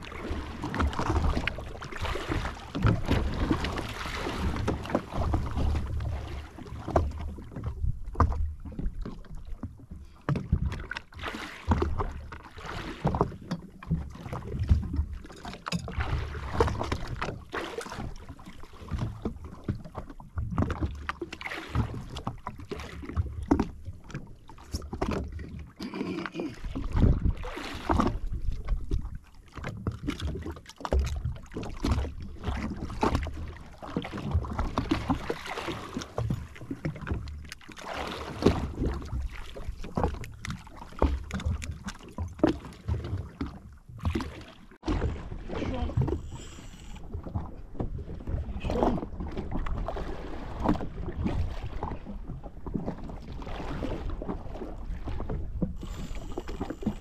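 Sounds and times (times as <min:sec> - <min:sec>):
water lapping against hull: 0:00.0 - 0:57.0.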